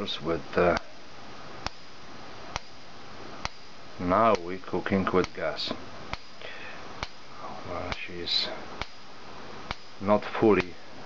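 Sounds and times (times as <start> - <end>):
faint steady hiss: 0.0 - 11.0
coil clicking: 1.6 - 10.8.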